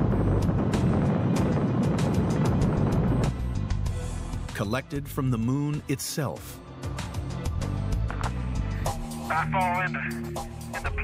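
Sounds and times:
rocket engines roaring: 0.0s - 4.0s
music: 0.0s - 11.0s.

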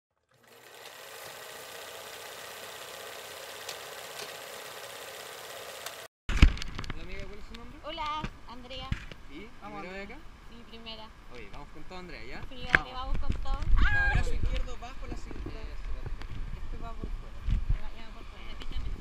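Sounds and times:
people talking: 17.7s - 19.0s.

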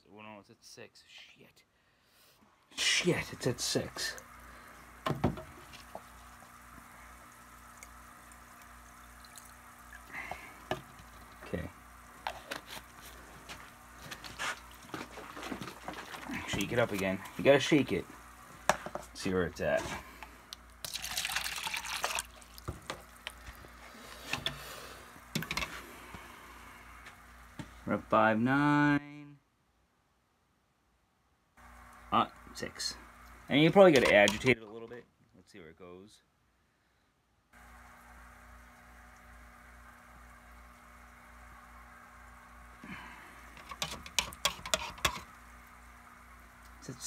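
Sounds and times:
background hum with hiss: 0.0s - 47.0s
water splashing in plastic containers: 3.4s - 24.5s
pen stirring water in plastic cup: 12.2s - 13.1s, 43.6s - 45.4s.

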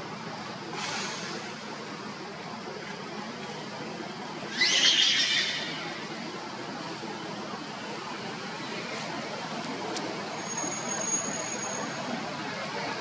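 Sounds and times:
monkey shrill squeal: 4.5s - 5.8s.

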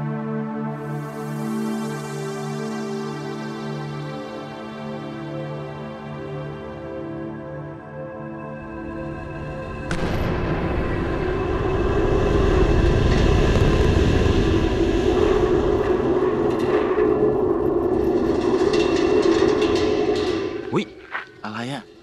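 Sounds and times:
rocket rumbling roar with rattling: 9.9s - 22.0s.

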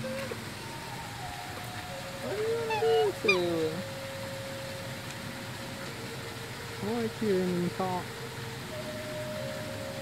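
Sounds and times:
faint steady hum: 0.0s - 10.0s
outdoor background noise: 0.0s - 10.0s
person speaking in high voice: 2.2s - 3.8s.

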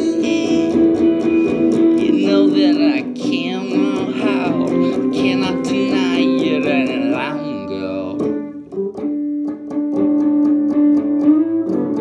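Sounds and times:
electric guitar melody: 0.0s - 12.0s.

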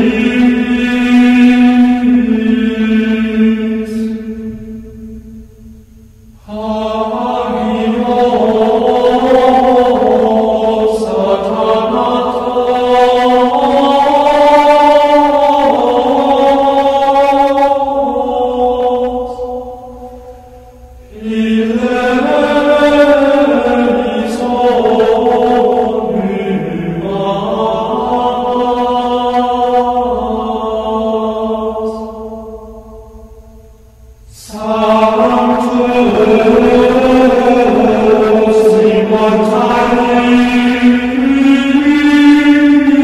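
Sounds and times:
slow devotional chant: 0.0s - 43.0s.

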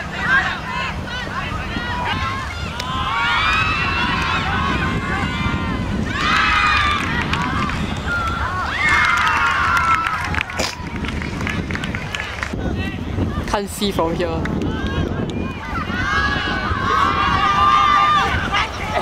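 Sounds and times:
wind rumble on microphone: 0.0s - 19.0s.

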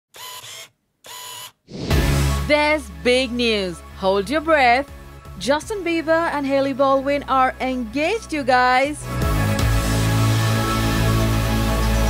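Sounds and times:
camera shutter and wind effect: 1.7s - 2.4s
whoosh: 1.7s - 2.5s
music: 1.7s - 12.0s.

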